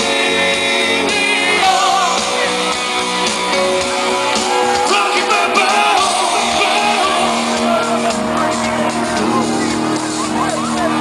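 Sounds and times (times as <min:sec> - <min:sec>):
live pop-rock band playing: 0:00.0 - 0:11.0.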